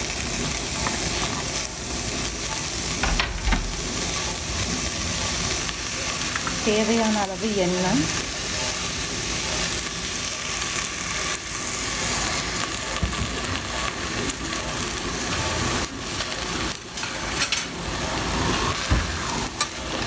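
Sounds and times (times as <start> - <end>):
onions sizzling in hot oil: 0.0 - 20.0.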